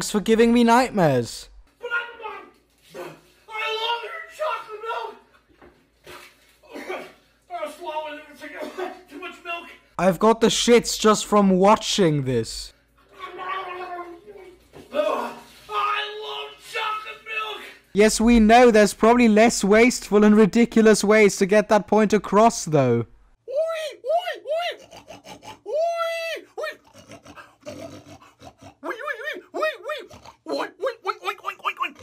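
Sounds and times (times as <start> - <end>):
man squealing like a pig: 23.5 - 32.0
man grunting like a pig: 24.6 - 32.0
man gargling: 24.7 - 25.9, 26.6 - 32.0.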